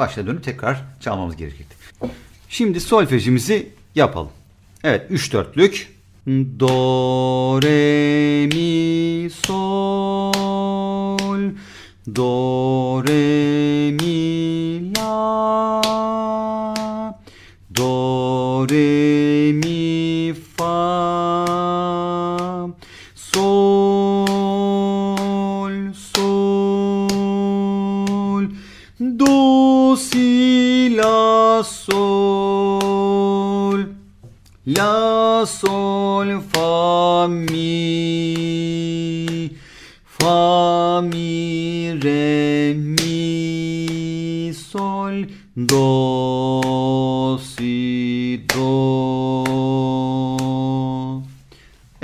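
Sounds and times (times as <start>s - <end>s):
man singing note names: 0.0s - 34.0s, 34.6s - 51.5s.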